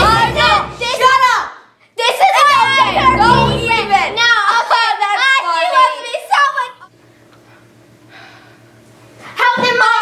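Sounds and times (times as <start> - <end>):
music: 0.0 - 1.1, 2.5 - 4.4
children speaking: 0.0 - 6.8.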